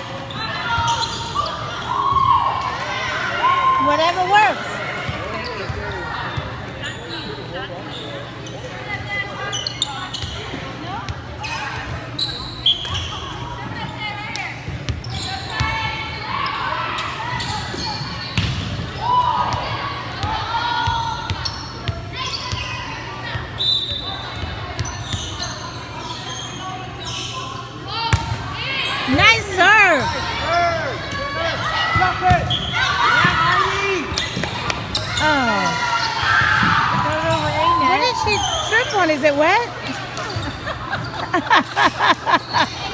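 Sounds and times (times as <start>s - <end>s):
players calling and chattering: 0.0s - 42.9s.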